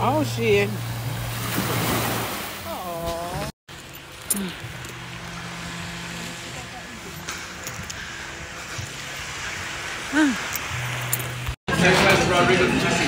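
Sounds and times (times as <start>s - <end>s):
steady low hum: 3.7s - 11.6s.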